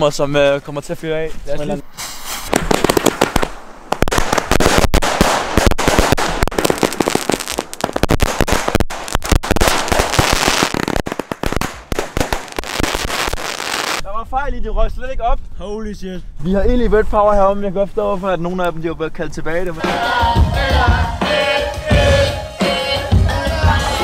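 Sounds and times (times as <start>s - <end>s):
firework fuse hissing: 1.9s - 14.0s
fireworks launching and crackling: 2.0s - 14.0s.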